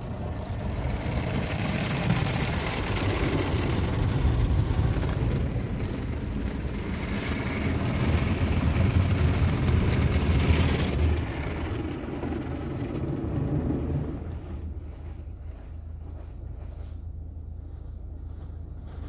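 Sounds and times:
water jets hissing on car: 0:00.0 - 0:14.8
low rumble: 0:00.0 - 0:19.0.

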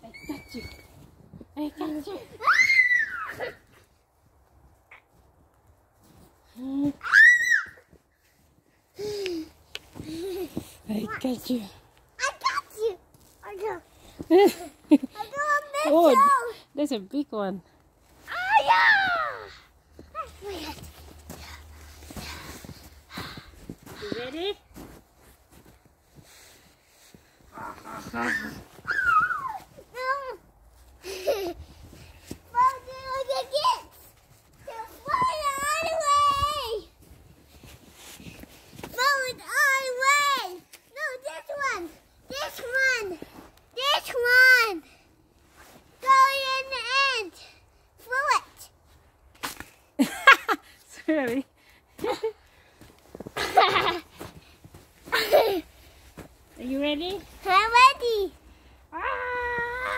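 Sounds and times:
child squealing and calling: 0:02.4 - 0:03.6, 0:07.0 - 0:07.9, 0:18.2 - 0:19.6, 0:27.5 - 0:30.4, 0:58.9 - 0:59.9.

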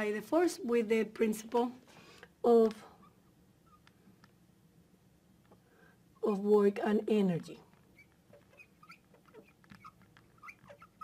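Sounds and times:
marker squeaking on glass: 0:03.0 - 0:03.9, 0:07.8 - 0:11.0.

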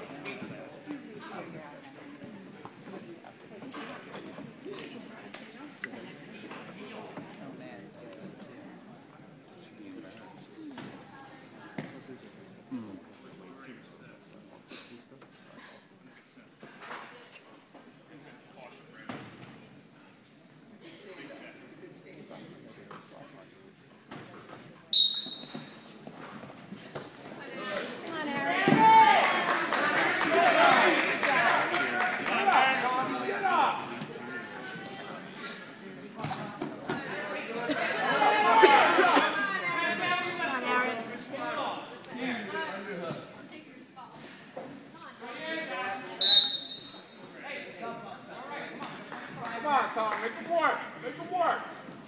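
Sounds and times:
spectators' voices: 0:00.0 - 0:52.0
referee's whistle blast: 0:25.0 - 0:25.8, 0:46.2 - 0:47.0.

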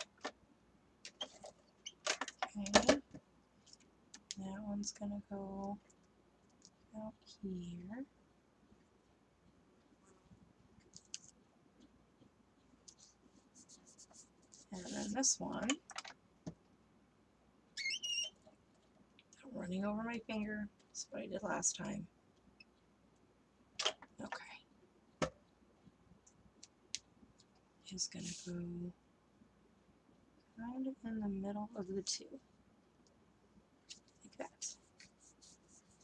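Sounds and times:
tape runner squeaking on paper: 0:17.8 - 0:18.4.

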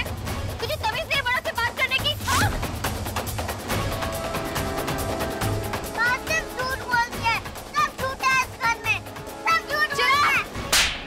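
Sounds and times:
hard slap on face: 0:10.7 - 0:11.0.

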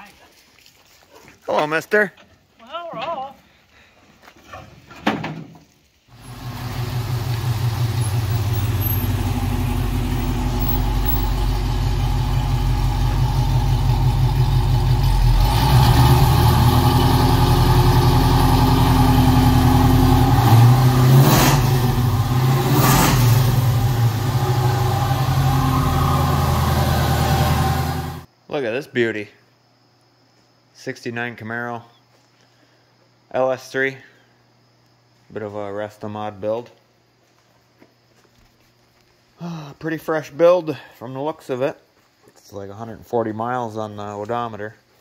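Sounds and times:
car engine running: 0:06.2 - 0:28.3.

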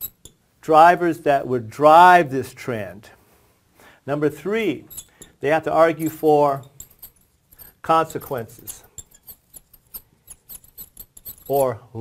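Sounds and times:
marker squeaking on glass: 0:00.0 - 0:00.4, 0:04.9 - 0:05.4, 0:08.1 - 0:11.7.

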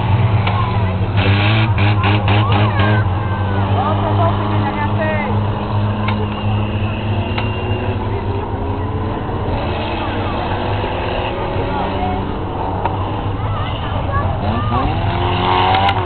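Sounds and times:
engine revving up: 0:00.0 - 0:16.0
racing car engines droning: 0:00.0 - 0:16.0.

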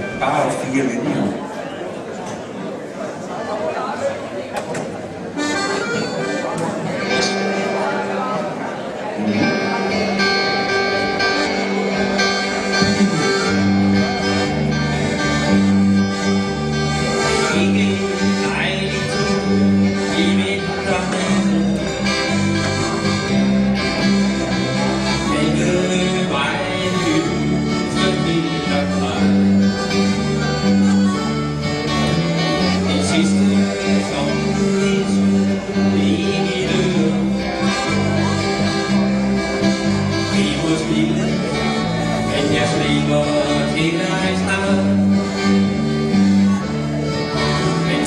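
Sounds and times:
live band with accordion: 0:00.0 - 0:48.0
people talking: 0:00.0 - 0:48.0
acoustic guitar: 0:05.6 - 0:08.4, 0:09.1 - 0:48.0
electric guitar: 0:09.2 - 0:48.0
drums: 0:12.7 - 0:14.2.

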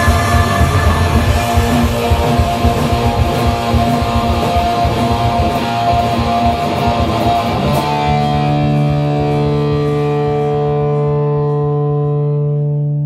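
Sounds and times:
electric guitar strumming: 0:00.0 - 0:13.0.

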